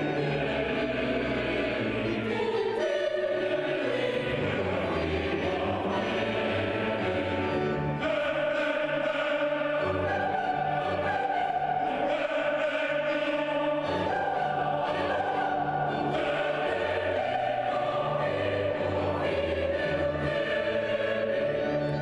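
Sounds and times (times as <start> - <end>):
choir singing: 0.0 - 22.0.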